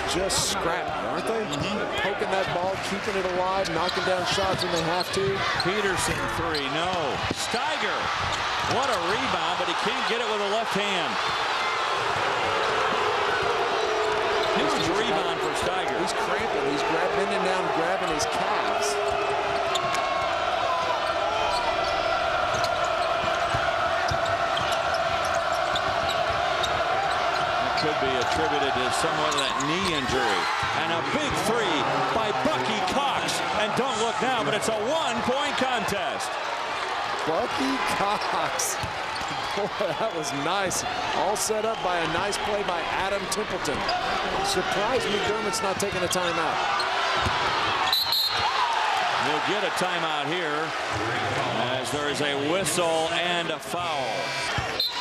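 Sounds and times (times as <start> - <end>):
arena crowd din: 0.0 - 55.0
sneaker squeaks: 19.5 - 20.0, 21.4 - 27.6, 29.3 - 30.7, 46.8 - 48.6, 54.5 - 55.0
basketball bouncing on court: 22.5 - 27.4.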